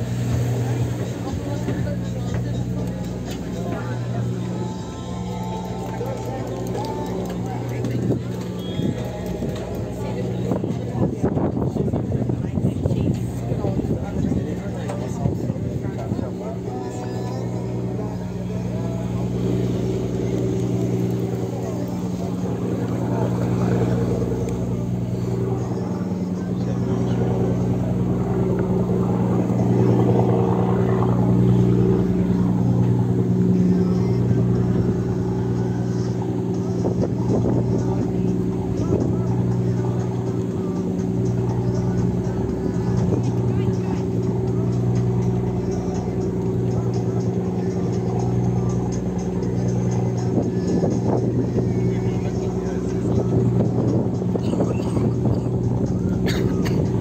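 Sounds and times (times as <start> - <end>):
boat engine humming: 0.0 - 57.0
boat wake noise: 0.0 - 57.0
rushing wind: 7.3 - 16.7.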